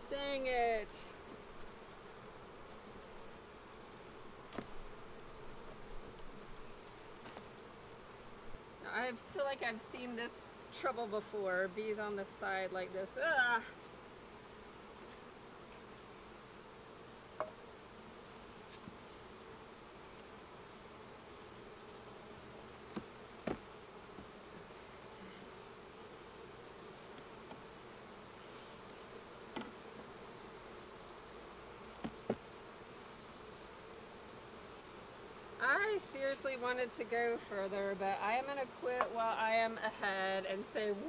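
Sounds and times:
honeybees buzzing: 0:00.0 - 0:41.0.

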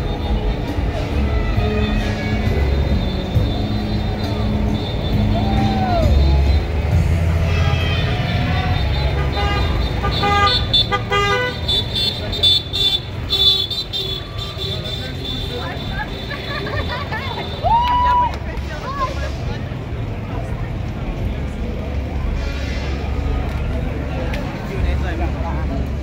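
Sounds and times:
low rumble of vehicles: 0:00.0 - 0:26.0
people talking: 0:14.3 - 0:26.0.

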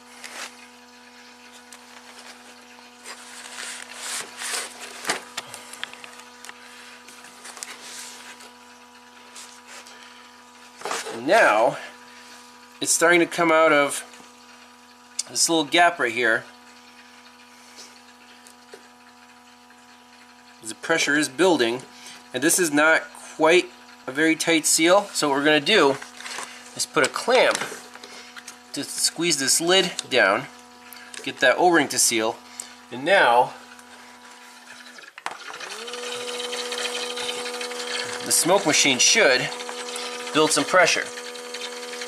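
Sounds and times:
small air pump humming: 0:00.0 - 0:42.0.

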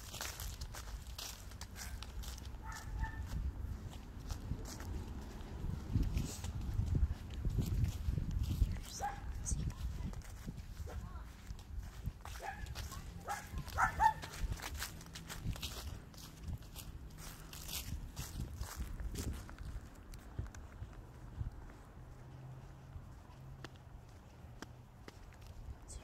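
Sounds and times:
footsteps walking: 0:00.0 - 0:26.0.

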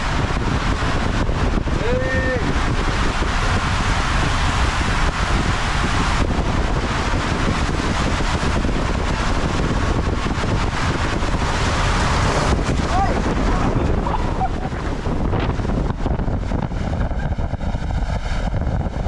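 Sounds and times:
water rushing down slide tube: 0:00.0 - 0:19.0
wind buffeting microphone: 0:00.0 - 0:19.0.

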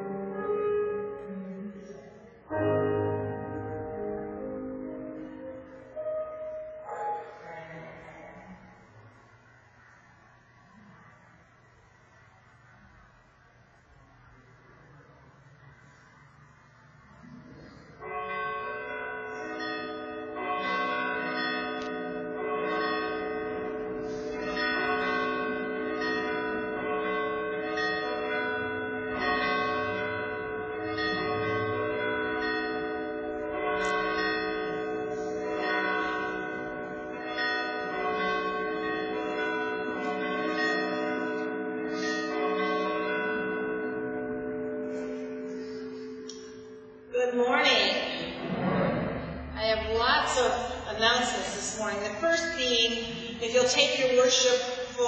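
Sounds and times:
church bells ringing: 0:00.0 - 0:01.8, 0:02.4 - 0:08.8, 0:17.0 - 0:48.4, 0:49.6 - 0:55.0.

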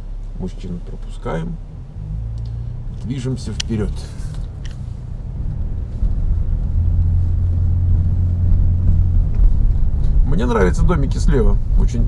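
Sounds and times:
car engine drone: 0:00.0 - 0:12.0
road rumble: 0:00.0 - 0:12.0.

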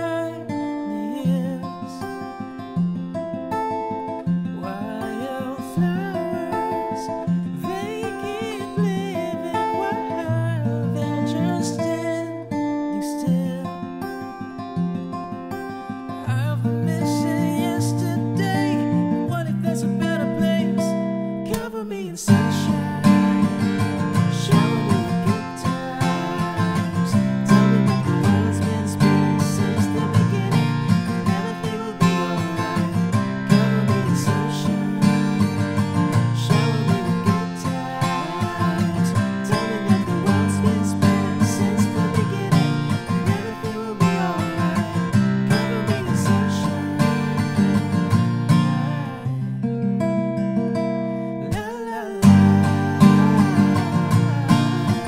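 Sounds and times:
acoustic guitar strumming chords: 0:00.0 - 0:55.0.

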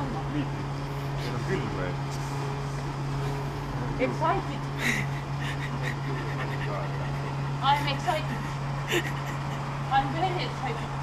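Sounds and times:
fuel pump humming: 0:00.0 - 0:11.0.

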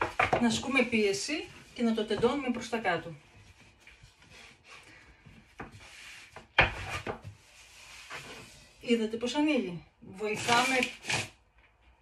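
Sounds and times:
rolling pin rolling over dough: 0:00.0 - 0:08.8.

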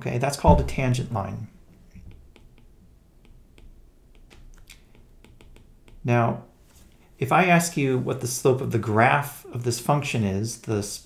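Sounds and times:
stylus tapping on tablet screen: 0:02.3 - 0:06.1.

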